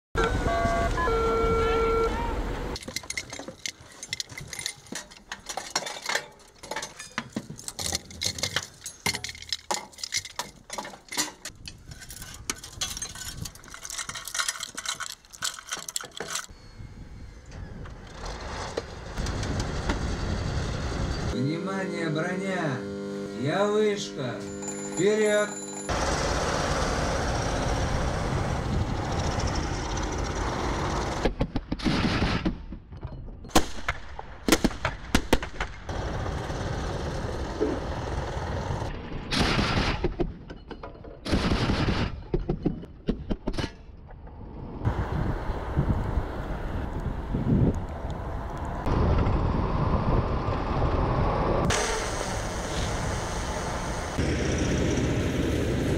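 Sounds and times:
armoured vehicle engines running: 0.2 - 16.5, 17.3 - 31.6, 35.7 - 39.4, 44.0 - 55.9.

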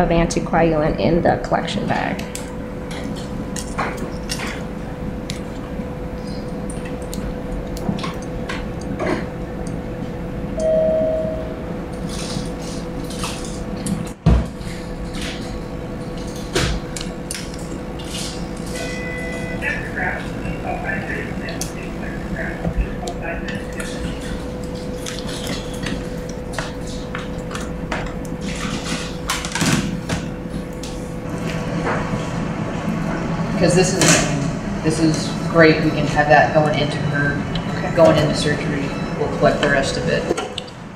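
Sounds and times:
steady machine hum: 0.0 - 40.9
short tone: 10.6 - 11.8.

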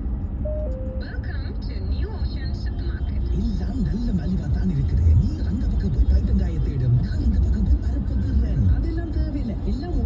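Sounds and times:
two-note tone: 0.4 - 1.0.

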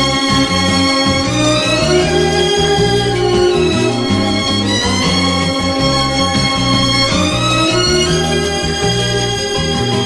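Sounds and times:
light orchestral music: 0.0 - 10.0.

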